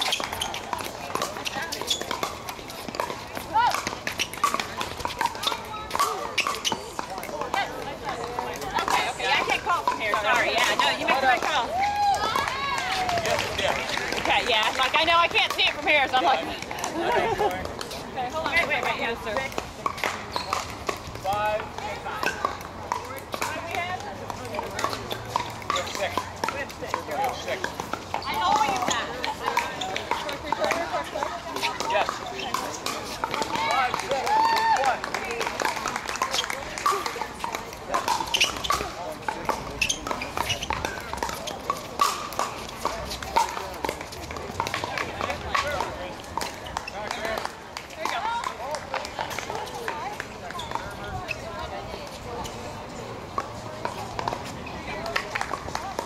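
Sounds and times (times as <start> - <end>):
paddles hitting plastic balls: 0.0 - 50.6
people talking: 0.0 - 56.0.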